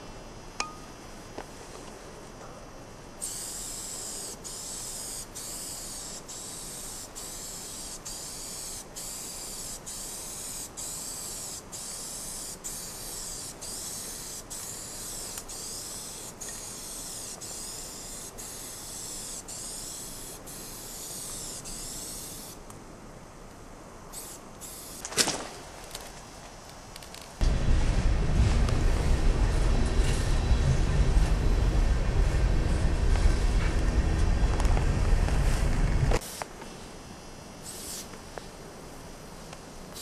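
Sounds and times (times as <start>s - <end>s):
spray-paint can hissing on metal: 3.2s - 22.6s, 24.1s - 25.0s, 37.6s - 38.1s.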